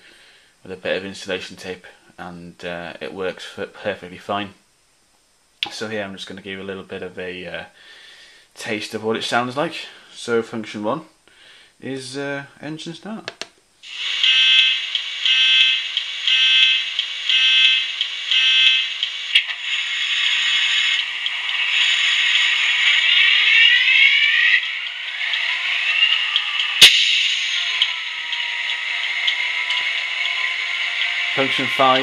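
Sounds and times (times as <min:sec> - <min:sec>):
pulsing tone: 0:21.6 - 0:32.0
sharp click: 0:26.8 - 0:28.8.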